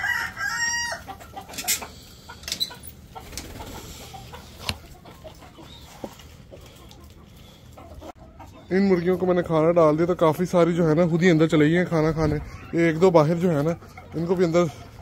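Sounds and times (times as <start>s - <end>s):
rooster crowing: 0.0s - 1.1s.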